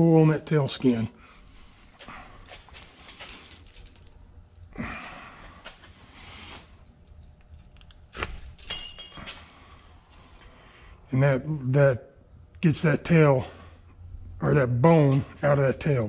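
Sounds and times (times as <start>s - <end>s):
metallic jingle: 2.0s - 4.2s, 6.2s - 10.7s.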